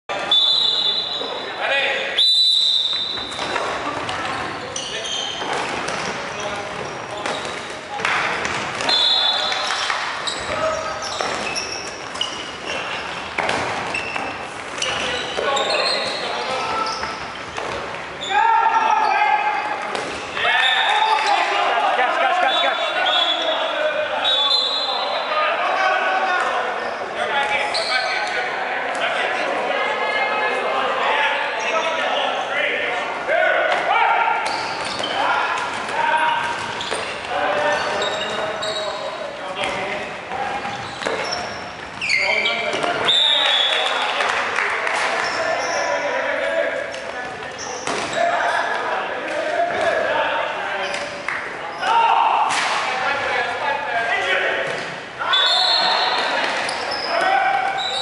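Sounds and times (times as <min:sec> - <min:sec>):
players shouting: 0:18.2 - 0:28.6, 0:51.5 - 0:58.0.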